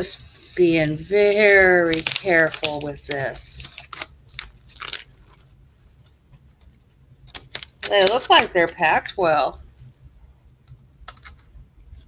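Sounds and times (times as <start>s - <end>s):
quiet package handling: 1.3s - 8.7s.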